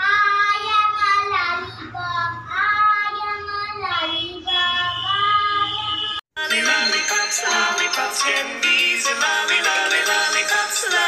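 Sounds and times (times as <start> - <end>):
girl singing: 0.0 - 6.0.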